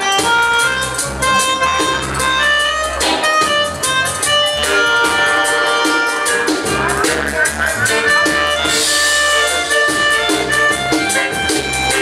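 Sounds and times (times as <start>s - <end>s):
dub music over sound system: 0.0s - 12.0s.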